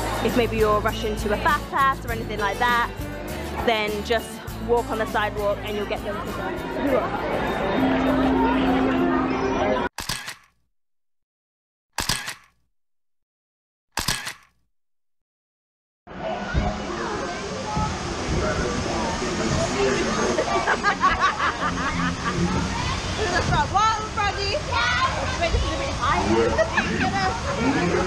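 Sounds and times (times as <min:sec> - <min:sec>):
rushing water: 0:16.1 - 0:28.0.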